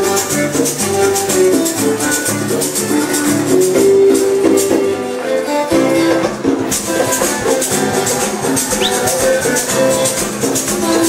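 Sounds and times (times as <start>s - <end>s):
maracas shaking: 0.0s - 5.2s, 6.0s - 11.0s
guitars playing: 0.0s - 11.0s.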